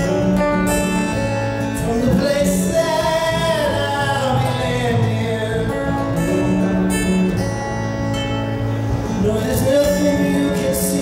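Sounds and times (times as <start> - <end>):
acoustic guitar folk ballad: 0.0 - 11.0.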